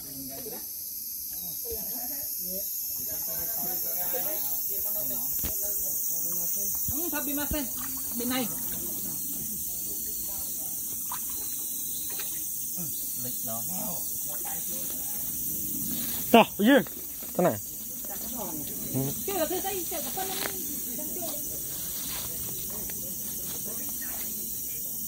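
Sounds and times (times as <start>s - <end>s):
indistinct talk: 0.0s - 25.0s
steady high hiss: 0.6s - 25.0s.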